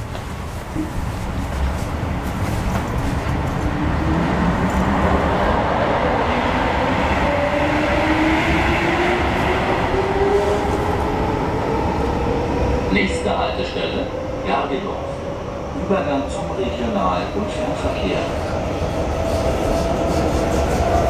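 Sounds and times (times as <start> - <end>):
train rolling rumble: 0.0 - 21.0.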